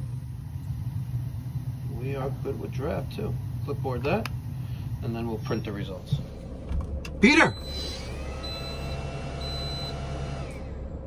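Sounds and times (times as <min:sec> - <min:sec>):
low steady hum: 0:00.0 - 0:11.0
steady whine winding down: 0:00.0 - 0:11.0
high electronic beeps: 0:05.4 - 0:06.0, 0:07.2 - 0:10.0.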